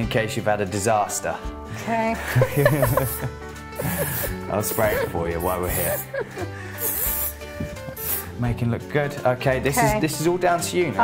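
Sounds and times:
background music: 0:00.0 - 0:11.0
aerosol hairspray hiss: 0:02.4 - 0:08.4.

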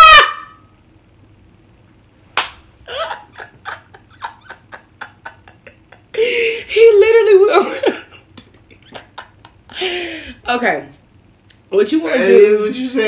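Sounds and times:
woman laughing: 0:02.8 - 0:10.4
woman gasping: 0:06.1 - 0:06.9, 0:09.7 - 0:10.5.

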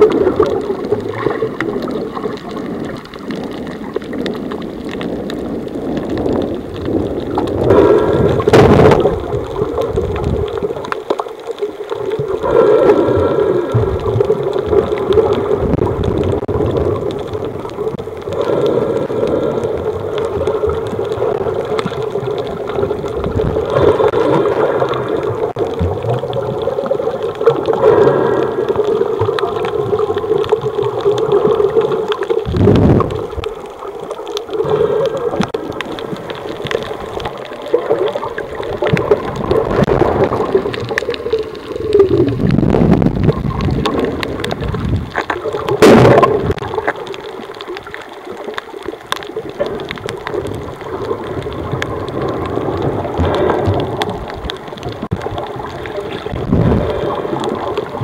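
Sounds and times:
muffled underwater water noise: 0:00.0 - 0:58.0.

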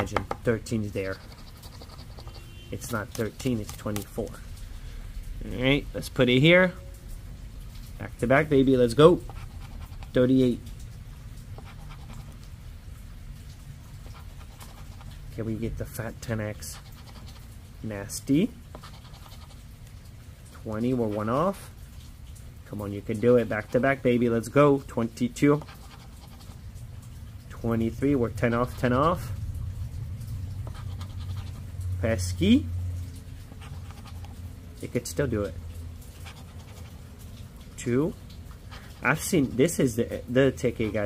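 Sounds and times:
steady low rumble: 0:26.8 - 0:34.3.

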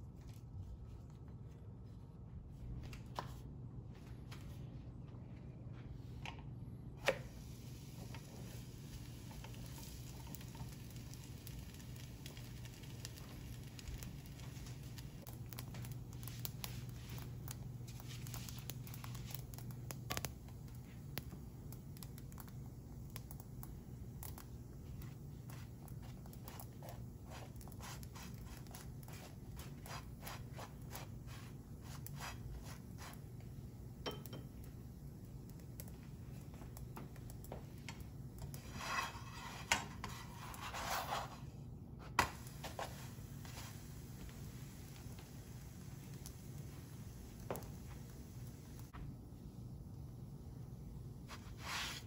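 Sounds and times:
low steady hum: 0:00.0 - 0:52.0
bread crackling in frying pan: 0:07.0 - 0:52.0
spatula scraping pan: 0:38.4 - 0:41.5.

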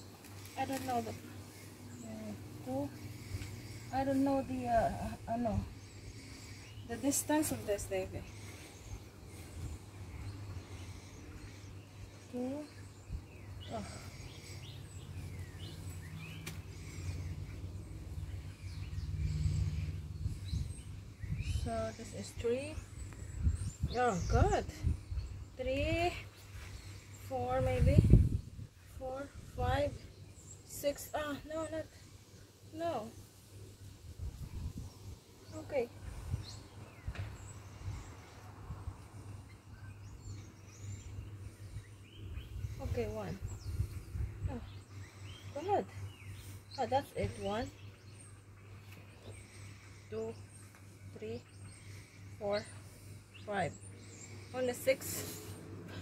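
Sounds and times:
birds chirping: 0:00.0 - 0:56.0
steady low hum: 0:00.0 - 0:56.0.

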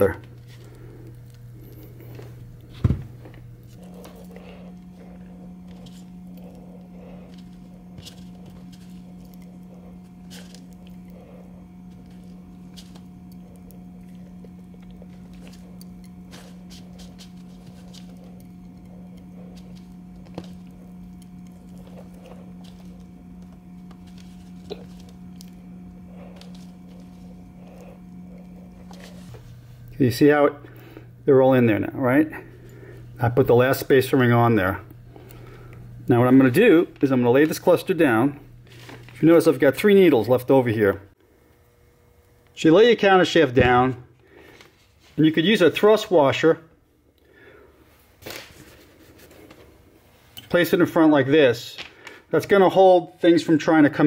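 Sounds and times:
low hum: 0:00.0 - 0:42.6.

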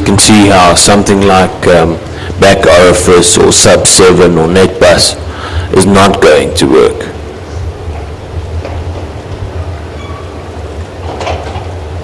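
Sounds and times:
room noise hiss: 0:00.0 - 0:12.0
steady low hum: 0:00.0 - 0:12.0.

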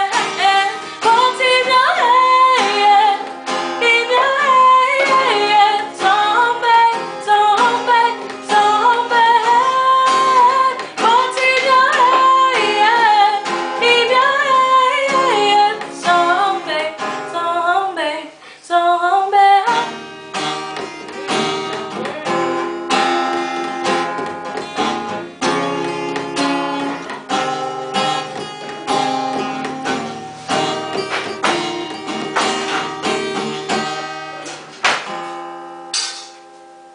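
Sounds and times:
acoustic guitar strumming: 0:00.0 - 0:18.4, 0:19.6 - 0:36.9
woman singing: 0:00.0 - 0:20.2.

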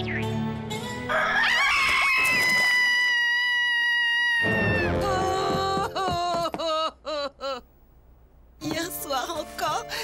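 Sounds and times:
background music: 0:00.0 - 0:01.9, 0:08.6 - 0:10.0
rooster crowing: 0:01.1 - 0:04.8.

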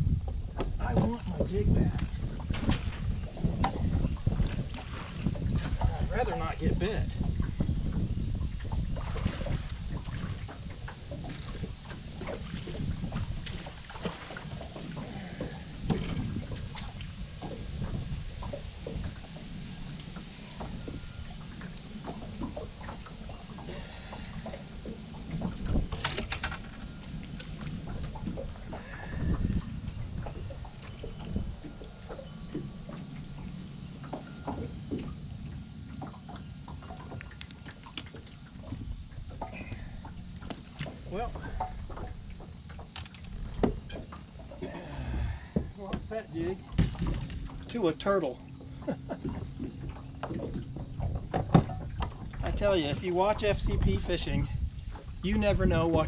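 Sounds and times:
wind and water rumble: 0:00.0 - 0:56.0.

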